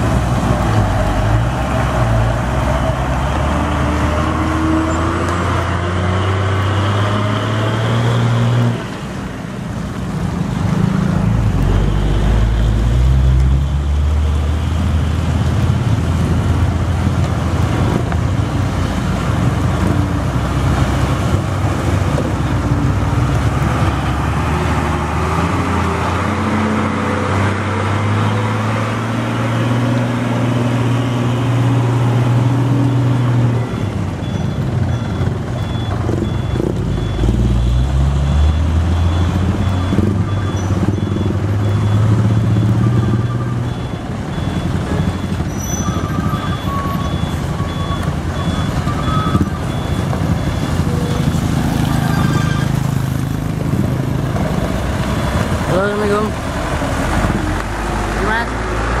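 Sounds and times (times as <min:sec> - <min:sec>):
diesel truck engines labouring: 0:00.0 - 0:59.0.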